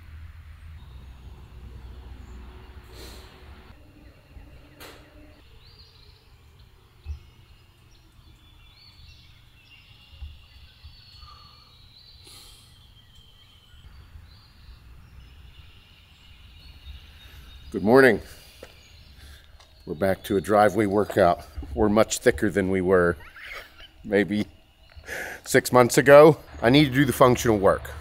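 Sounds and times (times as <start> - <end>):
birds calling: 0.7 - 28.0.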